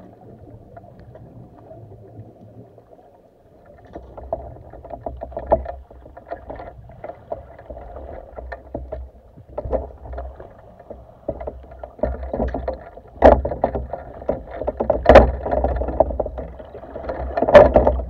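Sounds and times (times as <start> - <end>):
muffled water sloshing: 0.0 - 18.0.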